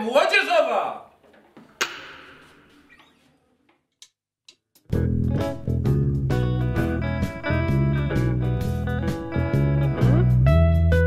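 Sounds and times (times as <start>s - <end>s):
electric guitars playing: 4.9s - 11.0s.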